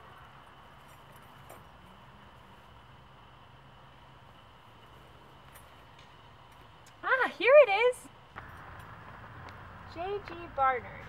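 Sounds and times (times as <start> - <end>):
low outdoor hiss: 0.0 - 11.0.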